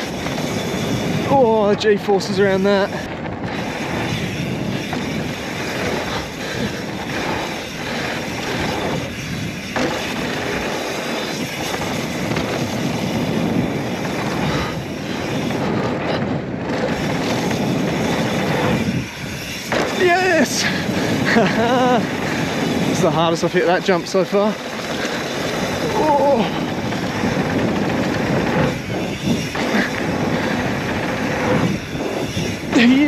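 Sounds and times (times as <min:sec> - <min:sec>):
bike rattling: 0:00.0 - 0:33.0
tyres on dirt: 0:00.0 - 0:33.0
wind rushing: 0:00.0 - 0:33.0.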